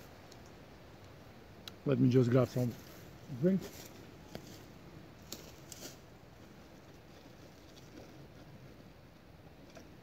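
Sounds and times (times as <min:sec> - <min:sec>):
faint rustling of jacket: 0:02.4 - 0:08.7.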